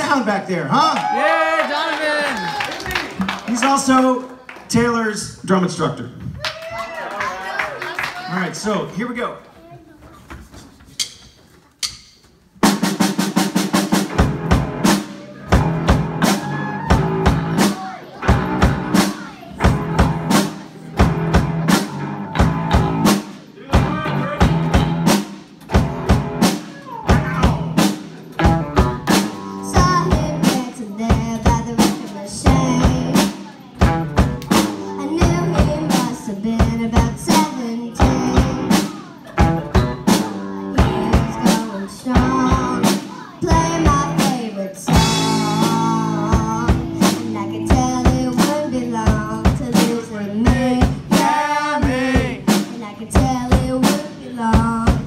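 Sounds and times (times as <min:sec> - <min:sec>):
live rock band playing: 0:11.9 - 0:55.0
child singing into a microphone: 0:29.4 - 0:55.0.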